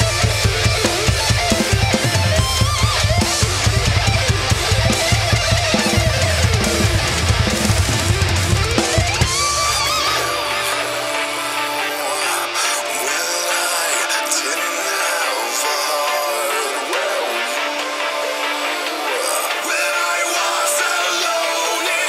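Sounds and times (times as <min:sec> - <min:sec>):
acoustic drum kit: 0:00.0 - 0:12.2
distorted guitars: 0:00.0 - 0:22.0
guitar line sliding upward: 0:00.0 - 0:22.0.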